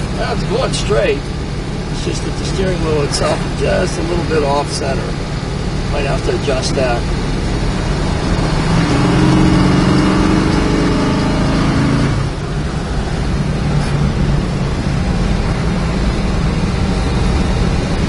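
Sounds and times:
car engine accelerating: 0.0 - 18.0
road noise: 0.0 - 18.0.

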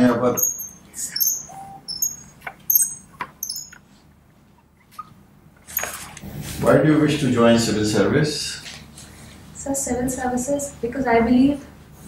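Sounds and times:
birds chirping: 0.3 - 3.8.

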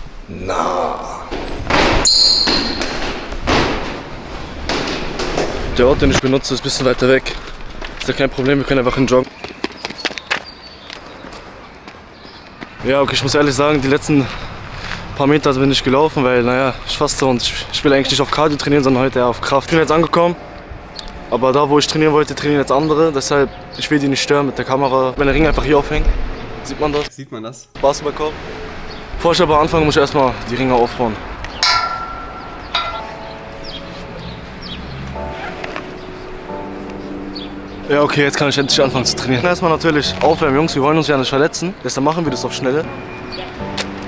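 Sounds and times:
steady outdoor hiss: 0.0 - 1.4, 27.7 - 44.0
metallic clangs ringing: 2.0 - 3.1, 31.5 - 33.9
jogging footsteps on pavement: 6.7 - 12.8, 14.2 - 15.2.

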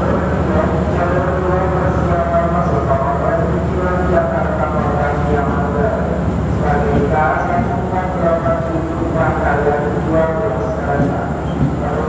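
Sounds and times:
train low rumble: 0.0 - 12.0.

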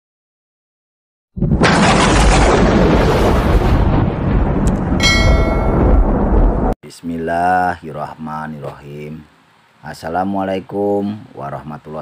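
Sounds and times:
bell-like ding: 5.0 - 6.0.

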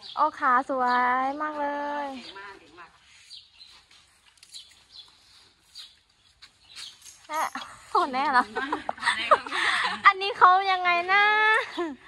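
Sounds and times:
small birds chirping: 0.0 - 10.8, 11.4 - 12.0.

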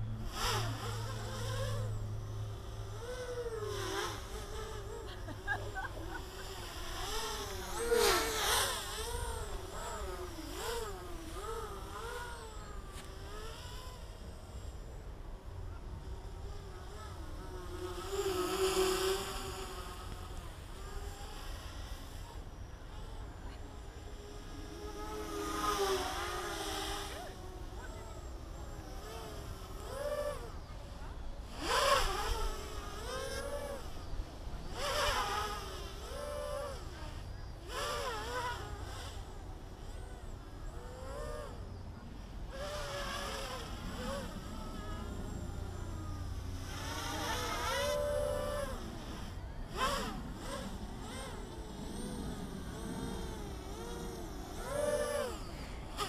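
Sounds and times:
quadcopter propellers whining: 0.0 - 56.0.

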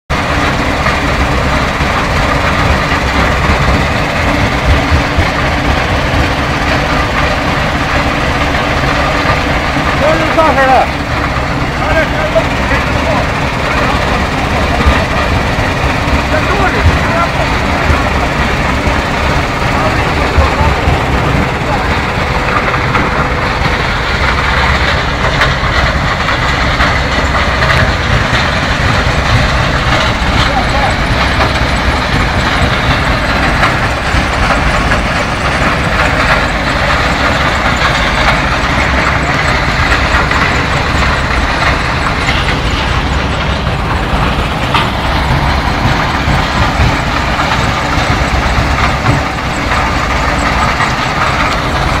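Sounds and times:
vibrating screens running: 0.1 - 52.0.

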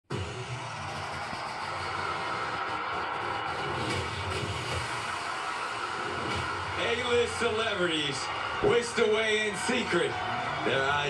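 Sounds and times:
tv show opening music: 0.1 - 9.6.

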